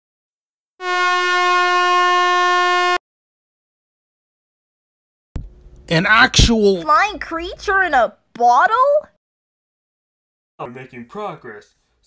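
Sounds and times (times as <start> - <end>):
air horn blast: 0.8 - 3.0.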